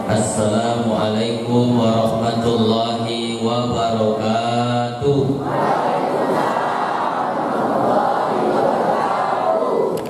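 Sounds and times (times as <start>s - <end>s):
man chanting into microphone: 0.0s - 5.5s.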